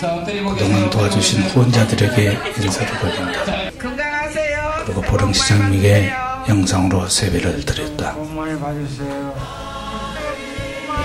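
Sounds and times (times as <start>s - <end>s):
choir singing a hymn: 0.6s - 3.9s, 7.7s - 11.0s.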